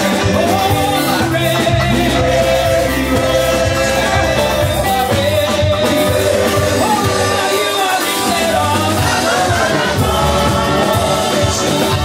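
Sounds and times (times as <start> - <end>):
amplified instrumental backing: 0.0 - 12.0
group singing gospel song: 0.0 - 12.0.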